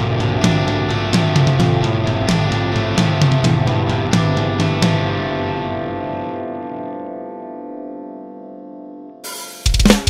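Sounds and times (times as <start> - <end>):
distorted electric guitar chord: 0.0 - 10.0.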